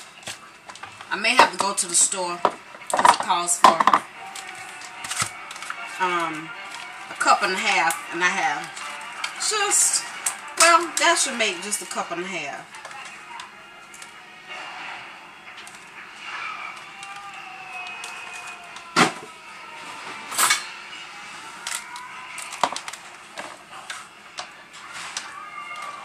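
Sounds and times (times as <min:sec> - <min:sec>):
kitchen utensils clattering: 0:00.9 - 0:04.1, 0:20.2 - 0:20.8.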